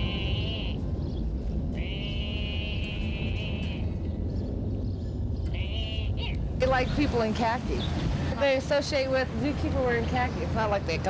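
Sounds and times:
animal bleating calls: 0.0s - 0.8s, 1.8s - 4.0s, 5.4s - 6.4s
low background rumble: 0.0s - 11.0s.

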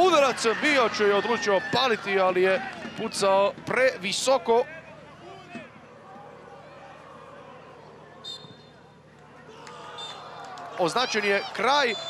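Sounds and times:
crowd murmur: 5.0s - 10.8s.

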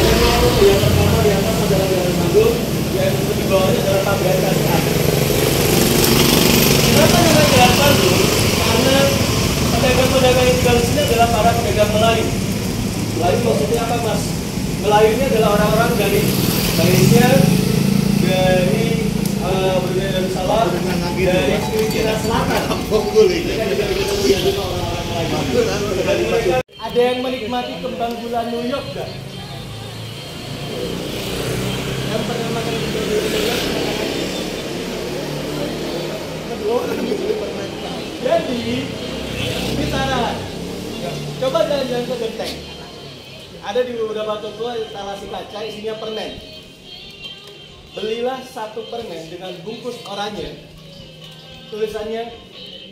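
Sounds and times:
people talking: 0.0s - 5.3s, 6.4s - 12.4s, 13.0s - 46.6s
small motorcycle engine running: 0.0s - 26.6s, 28.6s - 42.4s.

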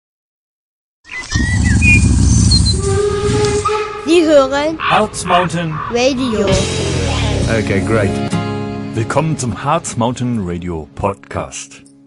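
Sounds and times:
whistle-like tone: 1.2s - 4.1s
loud low rumble: 4.7s - 8.2s.

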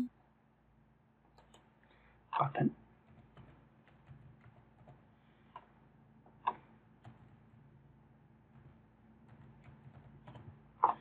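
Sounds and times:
low steady hum: 0.0s - 11.0s
computer keyboard keystrokes: 1.4s - 1.6s, 3.1s - 5.0s, 8.5s - 10.6s.

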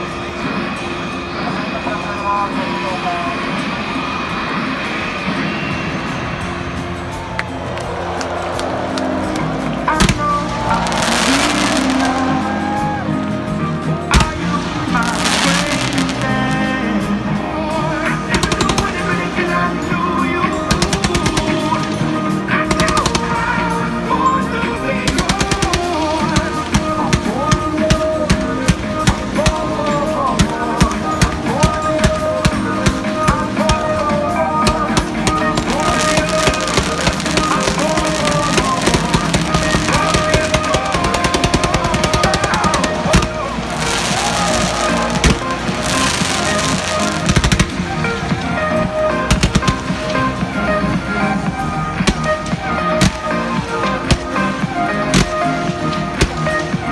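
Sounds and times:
fireworks bangs and crackles: 0.0s - 56.9s
music playing: 0.0s - 56.9s.

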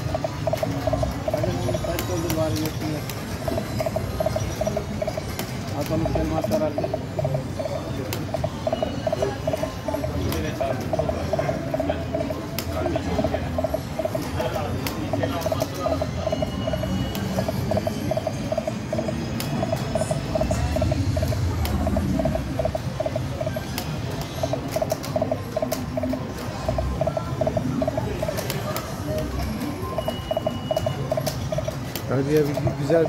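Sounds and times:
slot machine electronic blips: 0.0s - 33.0s
slot machine jingle music: 0.0s - 33.0s.

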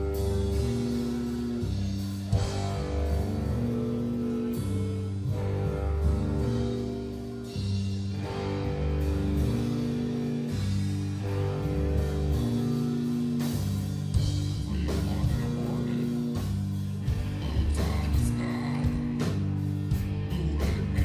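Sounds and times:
drum and cymbal hits: 0.0s - 21.0s
heavy electric guitar chords: 0.0s - 21.0s.

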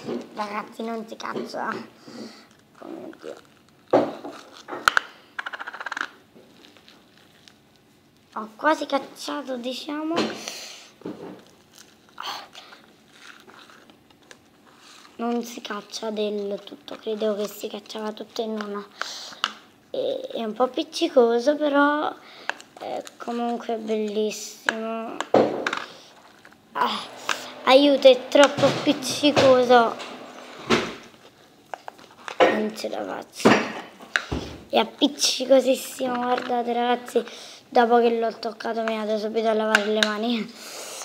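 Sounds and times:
slime squelch: 0.3s - 5.2s, 6.0s - 33.4s
crackly slime squeezed by hand: 2.5s - 5.1s, 11.4s - 15.1s.

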